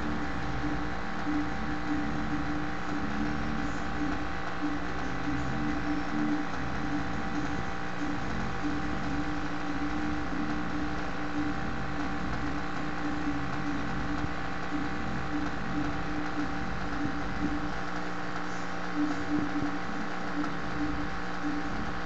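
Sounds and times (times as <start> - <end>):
small motor humming: 0.0 - 22.0.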